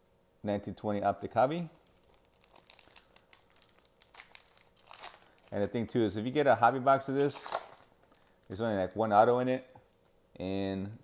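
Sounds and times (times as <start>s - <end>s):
foil wrapper tearing and crinkling: 1.8s - 5.8s, 6.9s - 9.0s.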